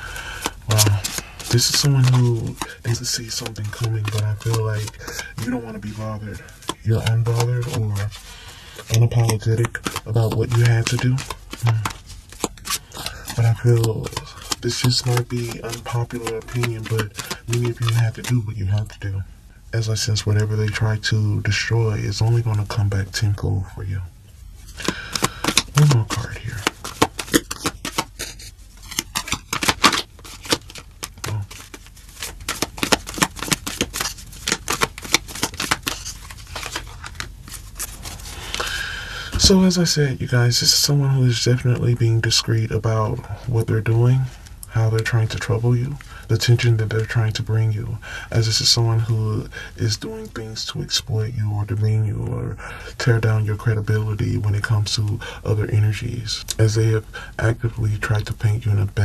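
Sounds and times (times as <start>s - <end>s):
cards clicking: 0.0s - 8.2s, 8.8s - 18.9s, 24.7s - 39.7s
cards rustling: 0.0s - 19.2s, 19.8s - 51.5s.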